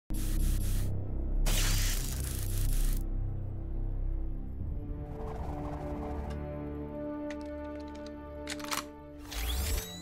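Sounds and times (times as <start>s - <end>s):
film score low notes: 0.1s - 9.9s.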